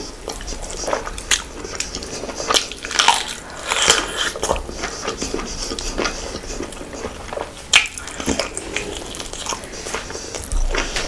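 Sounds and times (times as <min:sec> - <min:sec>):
chewing and wet mouth clicks: 0:00.2 - 0:11.0.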